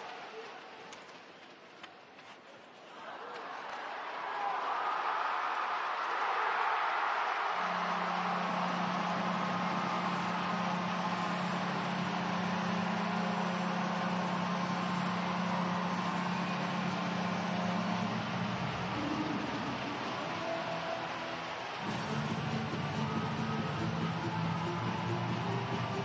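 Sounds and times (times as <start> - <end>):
arena crowd cheering: 0.0 - 1.6, 2.8 - 26.0
goal horn long low blast: 7.6 - 26.0.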